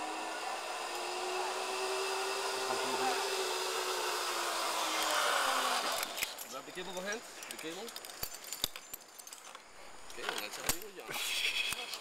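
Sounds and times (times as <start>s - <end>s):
metallic carabiner clicks: 6.0s - 6.5s.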